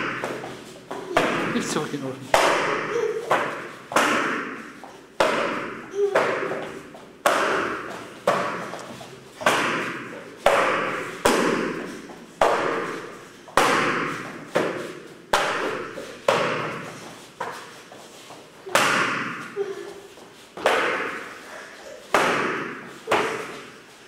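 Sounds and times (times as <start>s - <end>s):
kicks slapping a kicking paddle: 2.3s - 8.8s, 9.4s - 17.6s, 18.6s - 19.5s, 20.6s - 21.3s, 22.1s - 23.7s.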